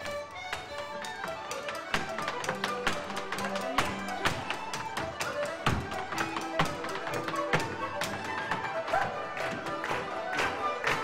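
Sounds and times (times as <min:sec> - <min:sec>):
dance shoes tapping wooden floor: 0:00.0 - 0:11.0
folk dance tune on accordion: 0:00.0 - 0:11.0
guitar and strings: 0:00.0 - 0:11.0.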